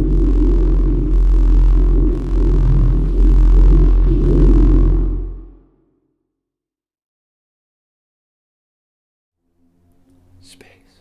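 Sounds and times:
steady low hum: 0.0s - 5.8s
person whispering: 10.4s - 11.0s.

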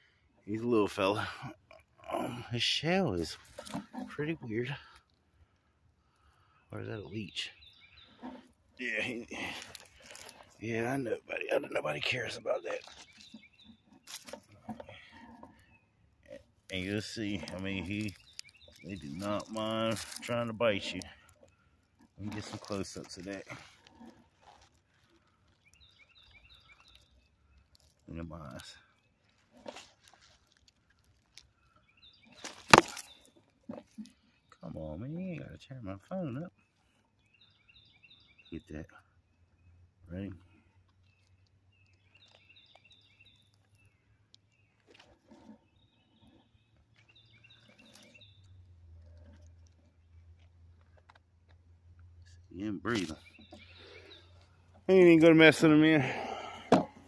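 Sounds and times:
bird song: 0.0s - 57.0s.

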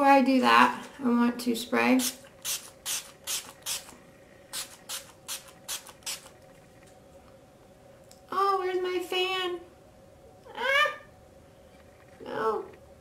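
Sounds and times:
spray bottle hisses: 2.0s - 6.3s.

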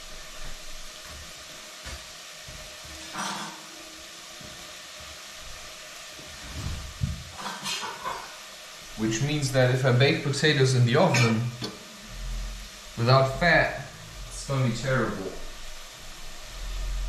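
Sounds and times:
food sizzling in a saucepan: 0.0s - 17.0s.

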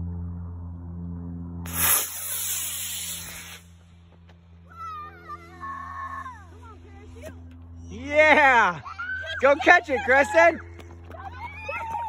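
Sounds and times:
rocket motor rushing hiss: 1.7s - 3.8s.

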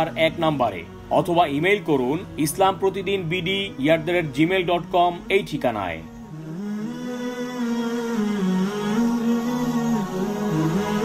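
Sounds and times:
slow melodic background music: 0.0s - 11.0s.

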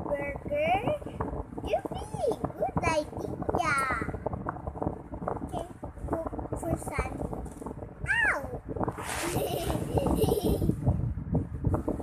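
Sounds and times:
brief hiss: 8.9s - 9.4s.

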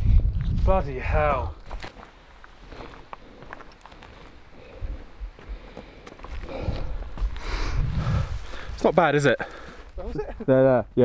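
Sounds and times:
footsteps on rocky dirt trail: 0.4s - 10.4s.

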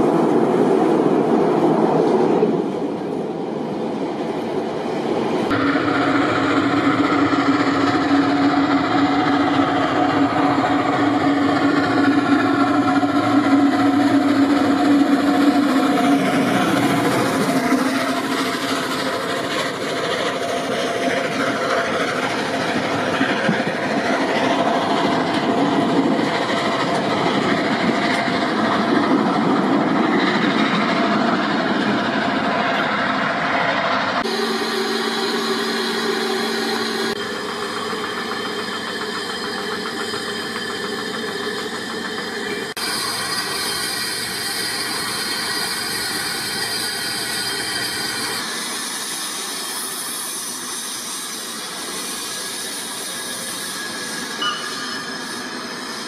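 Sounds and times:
steam train running past: 0.0s - 56.0s.

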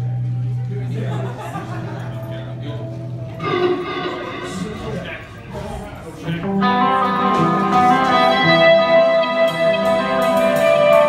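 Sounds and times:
electric guitars ringing: 0.0s - 11.0s.

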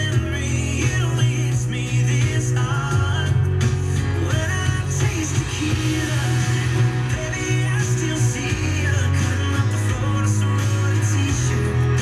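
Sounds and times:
country-pop song from radio speaker: 0.0s - 12.0s.

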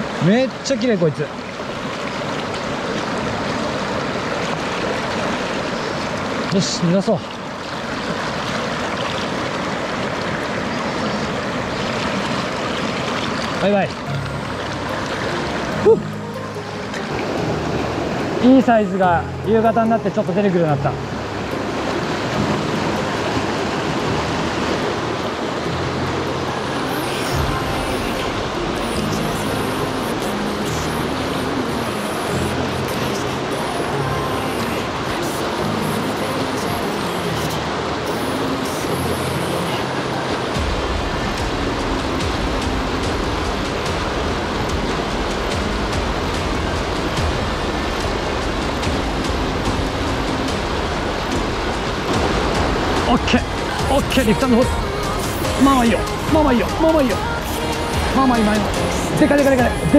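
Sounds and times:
stream rapids rushing: 0.0s - 59.9s
background music: 12.9s - 59.9s
heavy low beat: 40.6s - 59.9s.

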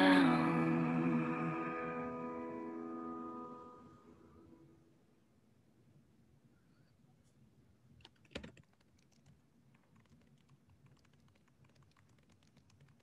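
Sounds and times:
faint scattered clicks: 8.0s - 13.0s.

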